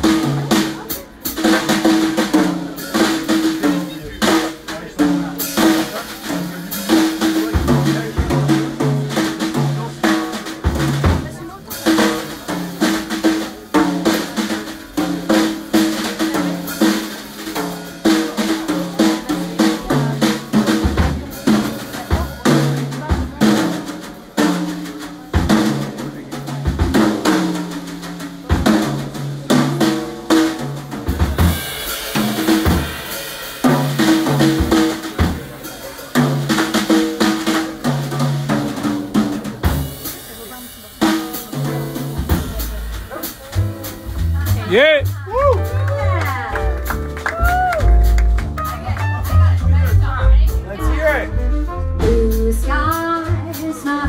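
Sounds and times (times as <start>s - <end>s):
jazz drum solo: 0.0s - 54.0s.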